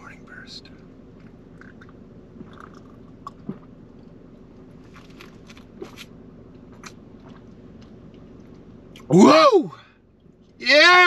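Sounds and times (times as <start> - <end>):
low hum inside car: 0.0 - 11.0
man swallowing juice: 1.5 - 4.2.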